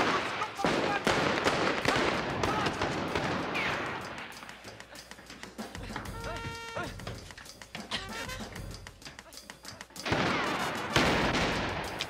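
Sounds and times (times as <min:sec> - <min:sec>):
handgun gunfire: 0:00.0 - 0:04.2, 0:10.1 - 0:12.0
men shouting: 0:01.8 - 0:03.0.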